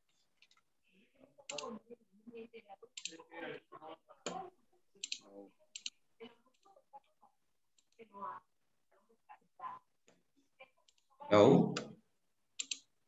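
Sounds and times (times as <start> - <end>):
faint muffled speech: 0.9 - 7.4
computer mouse clicks: 1.5 - 1.7, 5.0 - 6.7, 12.6 - 12.9.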